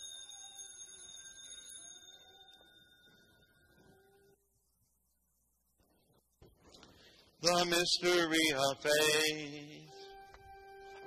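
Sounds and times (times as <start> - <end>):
altar bell ringing: 0.0 - 4.3.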